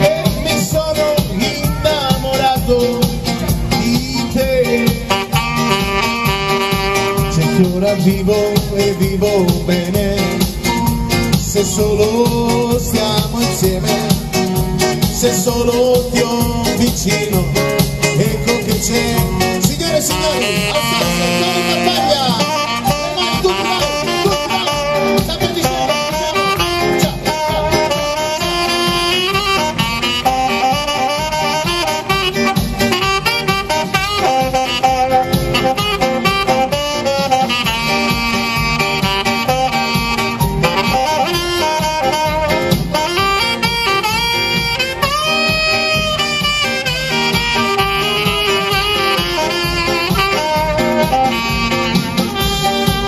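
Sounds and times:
saxophone solo: 0.0 - 11.4, 15.9 - 53.0
backing beat: 0.0 - 53.0.

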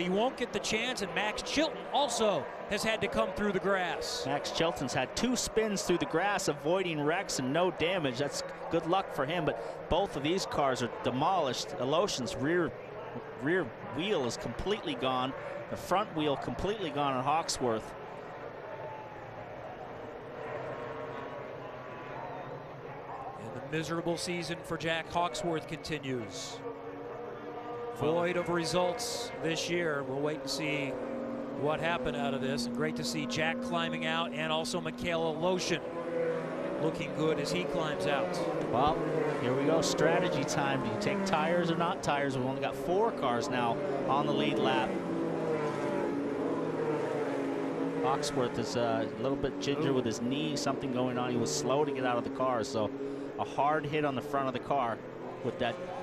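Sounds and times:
distant race car engines droning: 0.0 - 56.0.

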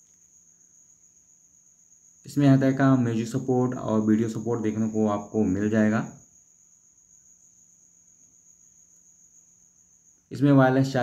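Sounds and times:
faint high-pitched whine: 0.0 - 11.0.

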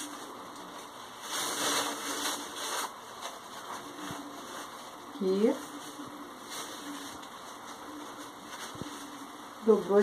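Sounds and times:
paper rustling as folded: 0.0 - 10.0
quiet steady hum: 0.0 - 10.0.

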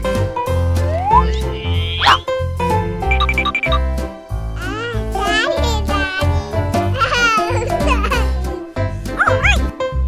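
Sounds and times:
upbeat children's music: 0.0 - 10.0.

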